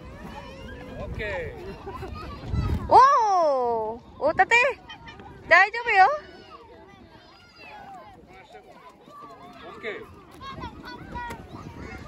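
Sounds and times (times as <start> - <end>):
adults and children talking: 0.0 - 12.0.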